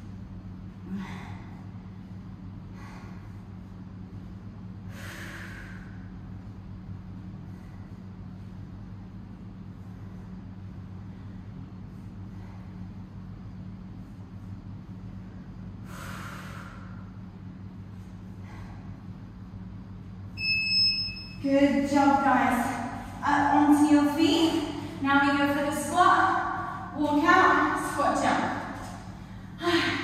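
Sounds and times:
steady low hum: 0:00.0 - 0:30.0
person exhaling forcefully: 0:04.9 - 0:06.0, 0:15.8 - 0:17.0.

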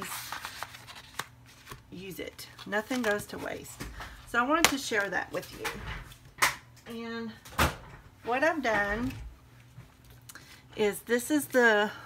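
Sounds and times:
paper rustling: 0:00.0 - 0:04.1.

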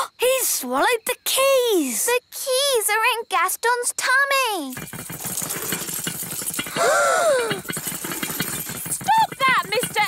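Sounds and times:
fast cartoon rattling: 0:04.6 - 0:10.0
whining cry: 0:06.7 - 0:07.7.

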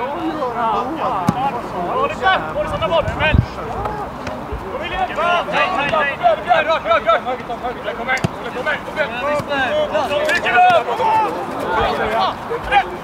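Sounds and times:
football players shouting: 0:00.0 - 0:13.0
football being kicked: 0:08.2 - 0:08.5.

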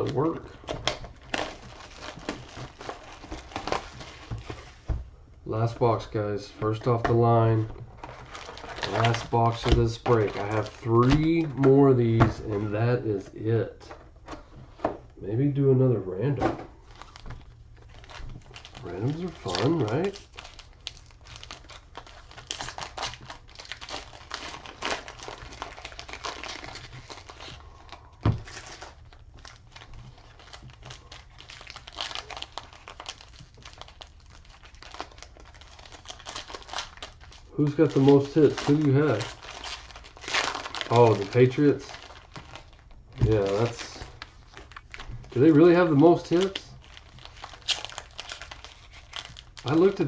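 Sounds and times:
foil wrapper crinkling and tearing: 0:00.0 - 0:04.8, 0:06.6 - 0:12.9, 0:16.8 - 0:50.0.

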